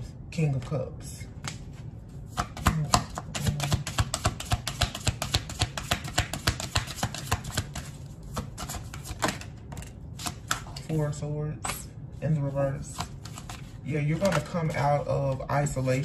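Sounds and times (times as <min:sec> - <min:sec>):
cards being shuffled by hand: 0:01.4 - 0:11.0, 0:11.6 - 0:16.0.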